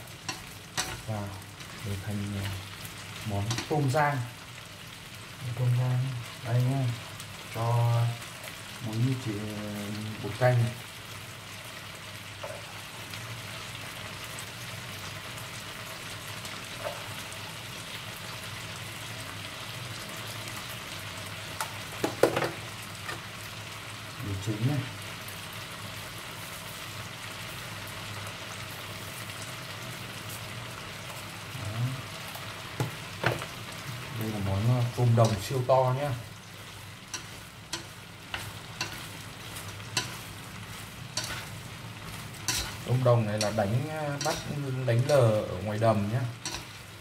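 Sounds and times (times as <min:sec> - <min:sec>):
shrimp sizzling in hot oil: 0:00.0 - 0:47.0.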